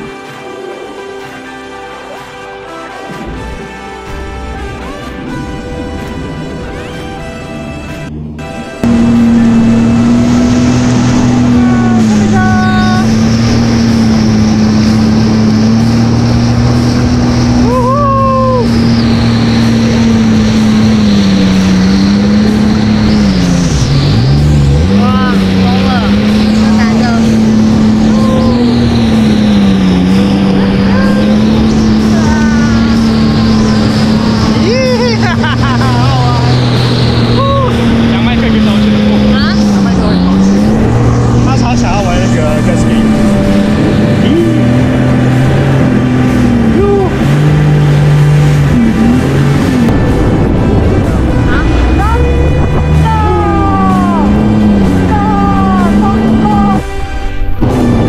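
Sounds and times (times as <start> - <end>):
jet ski engine running: 0.0 - 58.0
water noise: 0.0 - 58.0
wind noise: 3.2 - 58.0
people whooping and laughing: 17.6 - 18.7, 34.6 - 36.4.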